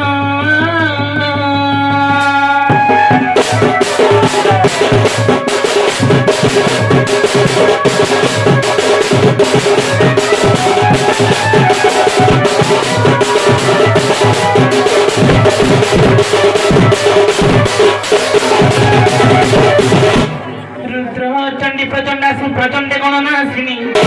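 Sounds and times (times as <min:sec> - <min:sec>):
barrel drum beaten fast: 0:01.8 - 0:20.5
held melodic line: 0:02.8 - 0:20.6.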